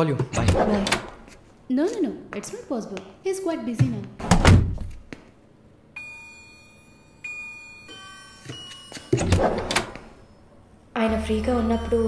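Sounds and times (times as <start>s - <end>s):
soft bell-like chime notes: 6.0s - 9.2s.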